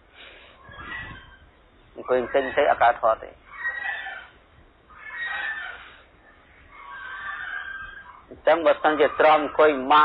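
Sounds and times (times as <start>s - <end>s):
faint animal calls: 0.2s - 10.0s.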